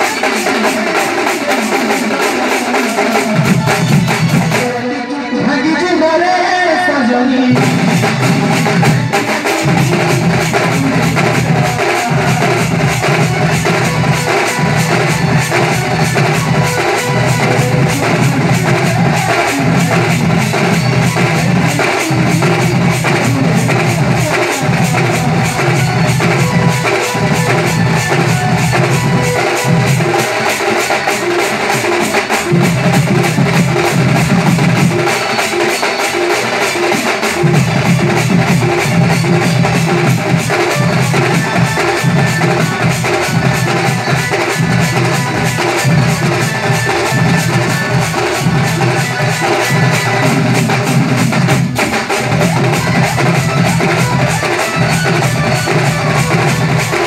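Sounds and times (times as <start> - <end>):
drums beaten in fast rhythm: 0.0 - 57.0.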